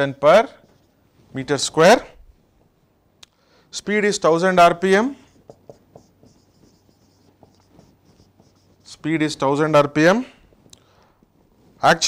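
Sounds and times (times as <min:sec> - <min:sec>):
marker writing on whiteboard: 0:00.0 - 0:02.1, 0:04.7 - 0:10.6.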